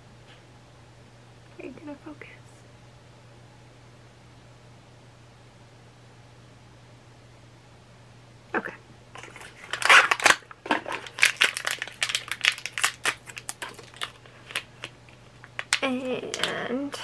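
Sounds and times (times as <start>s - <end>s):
packaging crinkling: 9.2s - 16.6s.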